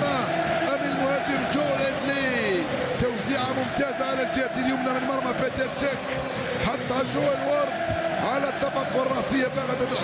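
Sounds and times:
man commentating: 0.0s - 10.0s
stadium crowd noise: 0.0s - 10.0s.

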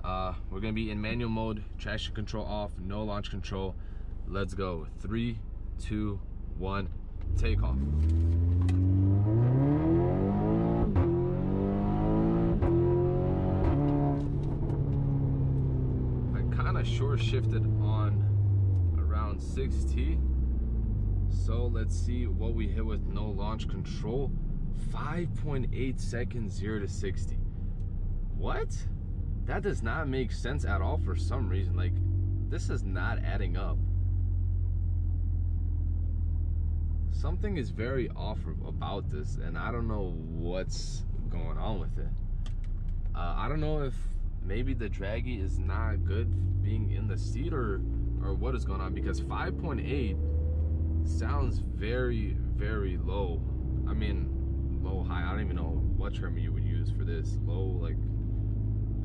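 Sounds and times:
car engine revving at full throttle: 7.2s - 27.0s, 44.8s - 56.3s.

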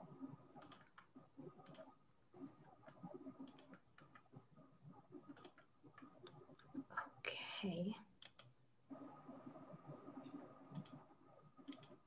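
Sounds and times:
faint steady hum: 0.0s - 12.0s
computer mouse clicks: 0.6s - 4.3s, 5.2s - 6.8s, 8.2s - 8.5s, 10.3s - 11.0s, 11.6s - 12.0s.

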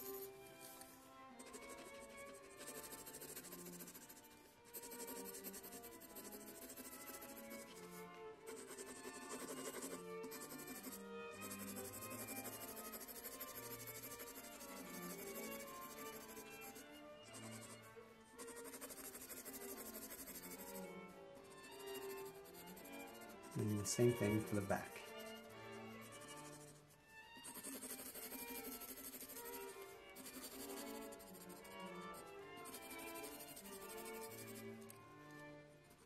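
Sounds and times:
pencil scratching on paper: 0.0s - 35.0s
soft background music: 0.0s - 36.0s.

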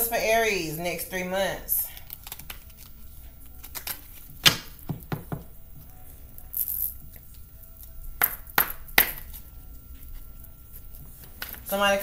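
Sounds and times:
cards rustling: 1.8s - 5.3s
cards tapped on a table: 4.4s - 5.5s.

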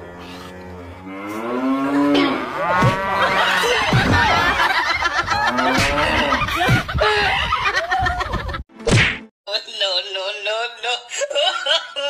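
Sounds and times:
loud whack: 5.7s - 6.9s, 8.8s - 9.3s.

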